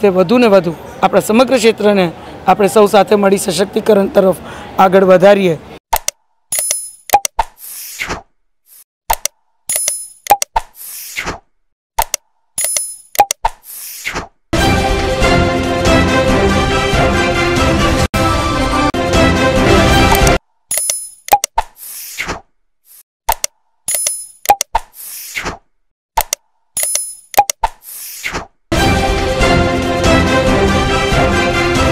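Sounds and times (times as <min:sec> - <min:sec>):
quick clicks and pops: 0:05.9 - 0:14.4, 0:20.1 - 0:28.6.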